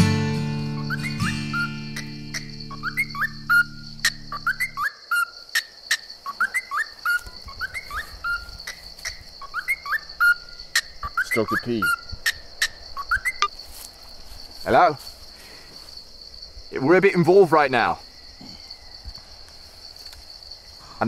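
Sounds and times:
acoustic guitar chord ringing: 0.0 - 4.4
bird chirping: 0.0 - 13.5.

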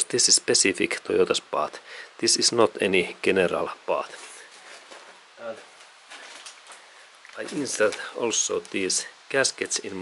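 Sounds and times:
low background hiss: 0.0 - 10.0
man speaking a word: 7.4 - 10.0.

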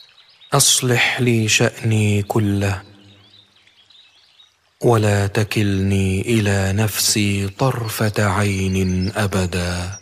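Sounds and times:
birds chirping: 0.0 - 10.0
man chanting: 0.6 - 3.0, 4.8 - 10.0.

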